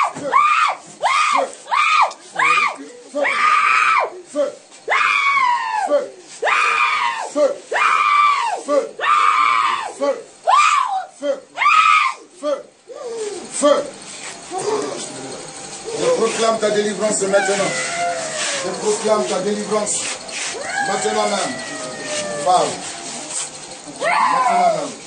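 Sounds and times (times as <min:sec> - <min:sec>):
woman screaming: 0:10.5 - 0:12.2, 0:17.5 - 0:18.8, 0:24.0 - 0:24.8.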